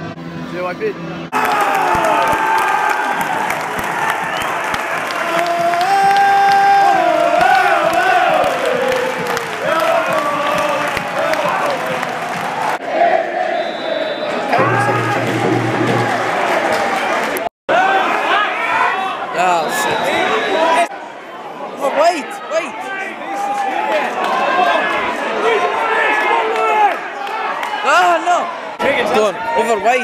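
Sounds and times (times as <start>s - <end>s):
music: 0.0s - 1.3s, 14.6s - 17.0s
crowd cheering and applauding: 1.3s - 13.0s, 13.6s - 18.6s.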